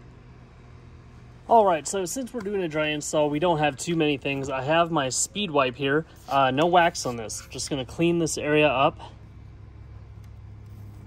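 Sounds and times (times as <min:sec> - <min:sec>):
low mechanical hum: 0:00.0 - 0:11.0
cloth rubbing: 0:06.0 - 0:07.9.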